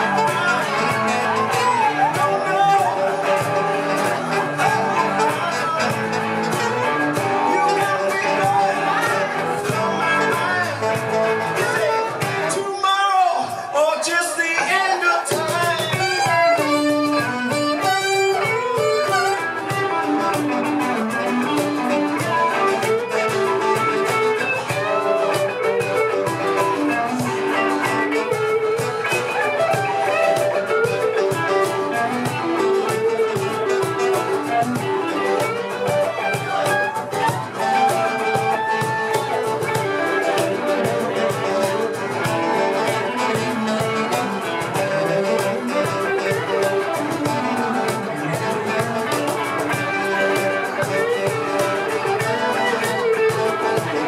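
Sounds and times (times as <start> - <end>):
live band instrumental: 0.0 - 54.0.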